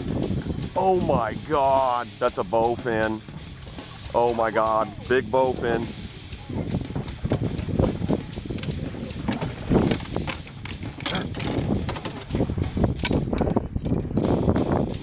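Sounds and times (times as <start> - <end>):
water splashing: 0.0 - 14.6
knocks on boat: 6.6 - 14.2.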